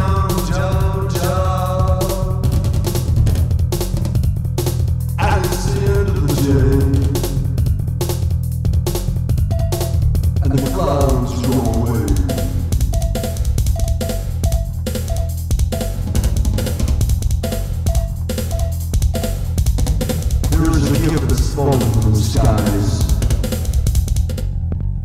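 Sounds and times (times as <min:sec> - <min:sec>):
drum beat: 0:00.0 - 0:24.4
steady bass: 0:00.0 - 0:25.0
staccato synth note repeating: 0:09.4 - 0:24.4
bending synth lead: 0:09.5 - 0:15.3
synthesizer music: 0:09.5 - 0:23.6.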